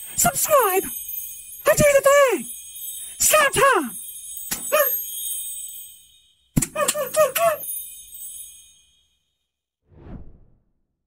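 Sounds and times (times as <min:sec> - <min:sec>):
high bell-like ringing tones: 0:00.8 - 0:09.4.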